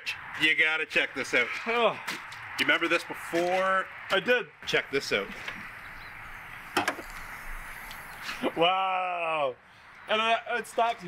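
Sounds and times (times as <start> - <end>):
hatch clunk: 6.8 - 7.2.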